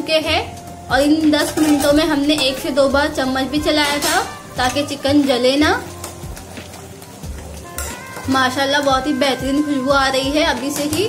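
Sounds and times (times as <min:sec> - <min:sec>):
soft background music: 0:00.0 - 0:11.0
spoon stirring in metal pot: 0:01.2 - 0:11.0.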